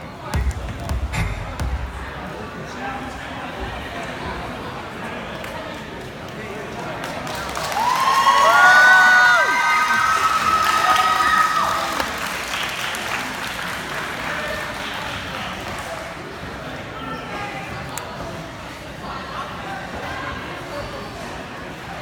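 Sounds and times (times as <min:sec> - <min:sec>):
crowd chatter: 0:00.0 - 0:22.0
crowd cheering and whooping: 0:07.6 - 0:12.0.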